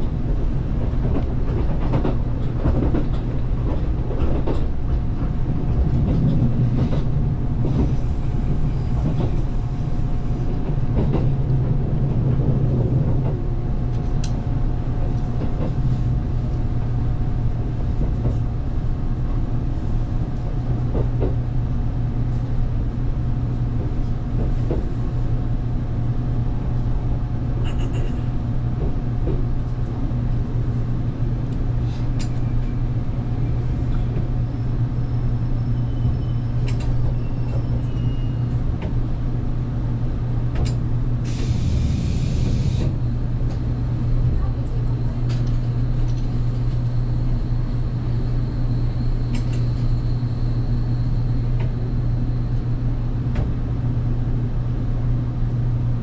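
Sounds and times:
train equipment low hum: 0:00.0 - 0:56.0
air hiss: 0:41.2 - 0:42.9.

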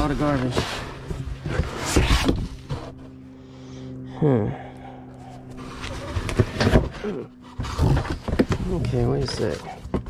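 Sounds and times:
cardboard boxes scraping: 0:00.0 - 0:03.1, 0:05.5 - 0:10.0.

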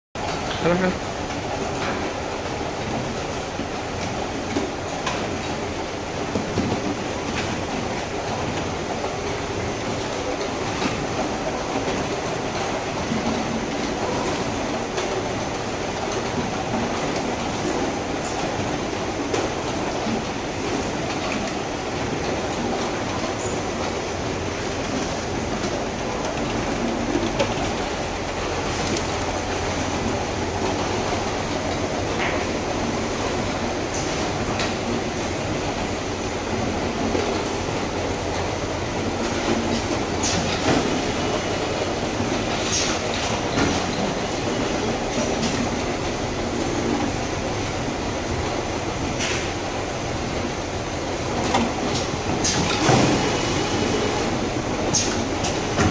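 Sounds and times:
bottle-filling machinery running: 0:00.2 - 0:55.9.

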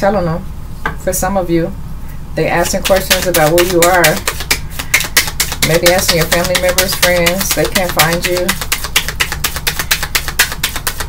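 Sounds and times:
cards being shuffled: 0:02.6 - 0:11.0.

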